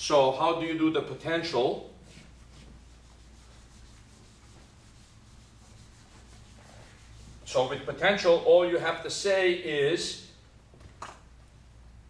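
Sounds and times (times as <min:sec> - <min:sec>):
eraser rubbing on whiteboard: 0:02.0 - 0:07.9.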